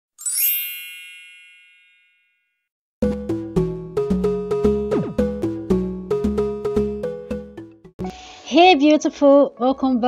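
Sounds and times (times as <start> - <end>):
bright high-pitched chime: 0.2 - 2.6.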